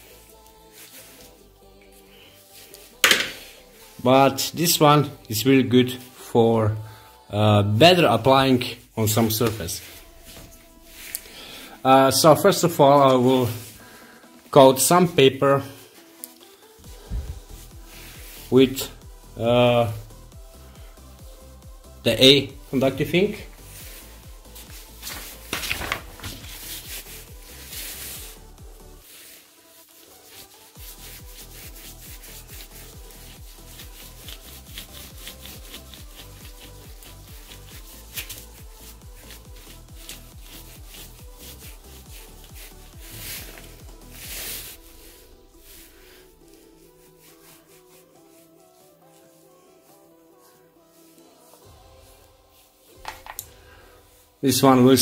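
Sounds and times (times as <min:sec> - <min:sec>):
paintbrush rubbing on paper: 0:00.0 - 0:04.1, 0:08.6 - 0:11.8, 0:16.6 - 0:21.6, 0:22.7 - 0:25.5, 0:26.2 - 0:53.1, 0:54.0 - 0:54.5
faint background music: 0:00.0 - 0:55.0.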